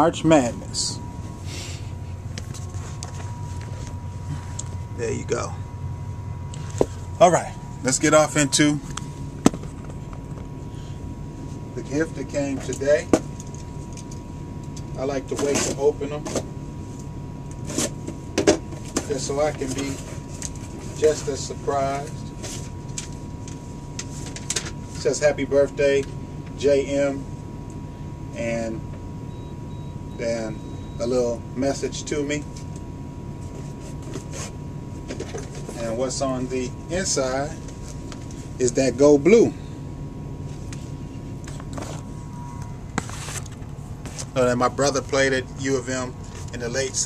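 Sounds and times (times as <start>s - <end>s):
faint high whine: 0.0s - 47.0s
steady low hum: 0.0s - 47.0s
paper rustling: 43.0s - 44.4s.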